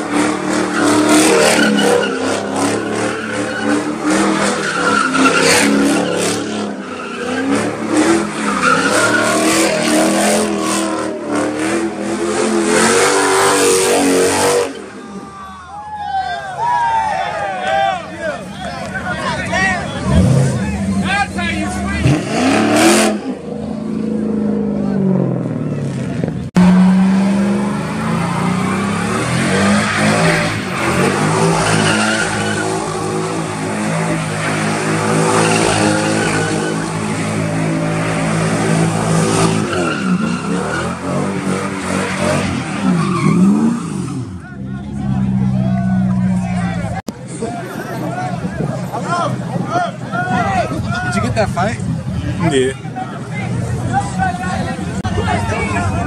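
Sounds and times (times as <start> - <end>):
tires squealing: 0.0 - 56.0
car engine revving: 19.2 - 47.1.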